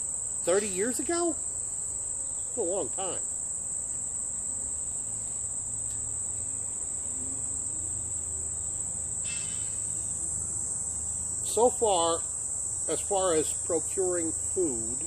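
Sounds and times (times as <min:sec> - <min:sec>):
insects droning: 0:00.0 - 0:15.0.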